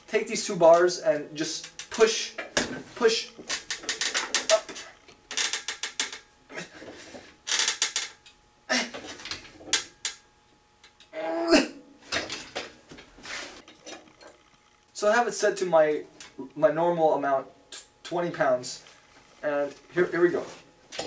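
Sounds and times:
weight stack clattering and creaking: 1.6 - 8.2
person grunting: 6.5 - 6.9, 8.7 - 9.1, 11.2 - 11.8.

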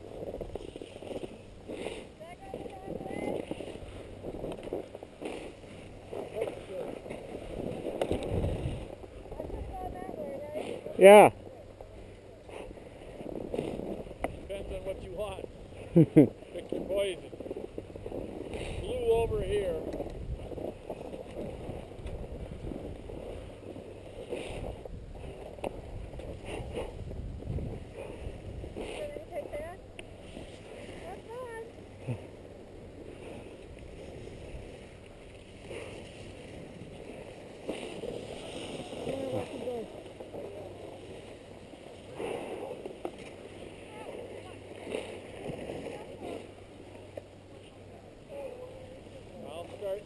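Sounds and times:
wind rumble on microphone: 0.0 - 10.9, 11.9 - 43.0
skis scraping on snow: 0.0 - 50.0.

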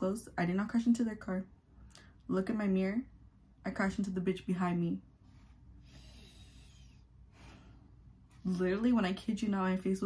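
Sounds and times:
faint soft breath: 5.2 - 8.1.

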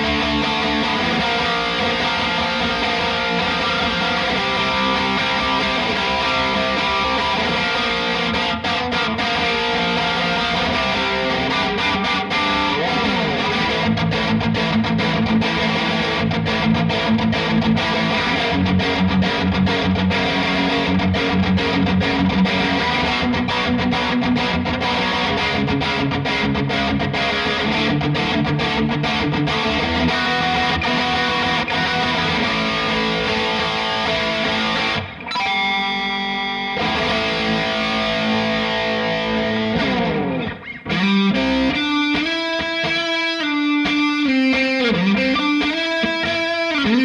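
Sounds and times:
distorted electric guitar: 0.0 - 47.0.

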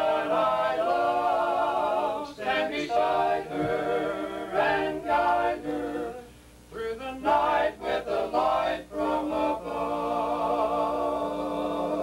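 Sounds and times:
men singing a cappella chord: 0.0 - 12.0.

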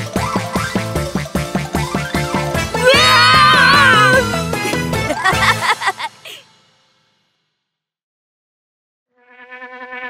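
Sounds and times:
cartoon fly buzzing: 9.1 - 10.0.

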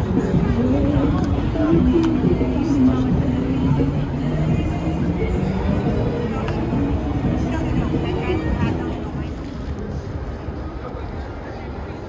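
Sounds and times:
indistinct voices: 0.0 - 12.0
traffic hum: 0.0 - 12.0.

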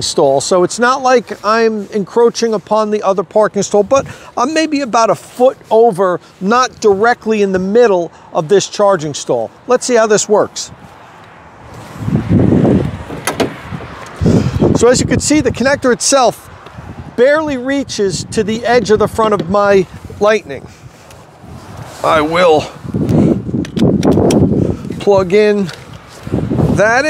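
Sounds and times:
wind buffeting microphone: 10.3 - 27.0
cable handling clicks and knocks: 13.0 - 14.2, 23.6 - 25.0.

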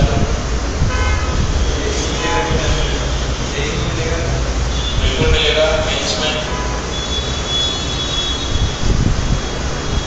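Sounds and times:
road traffic noise: 0.0 - 10.0
vehicle horn toots: 0.8 - 1.4, 4.7 - 5.2, 6.4 - 8.8.

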